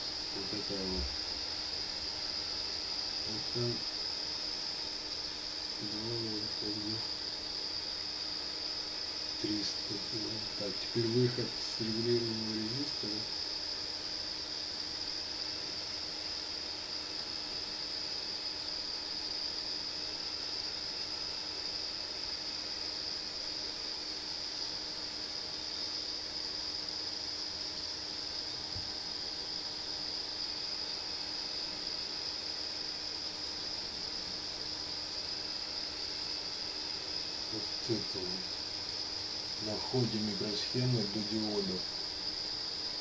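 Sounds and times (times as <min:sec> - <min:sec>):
high-pitched whine: 0:02.6 - 0:04.3.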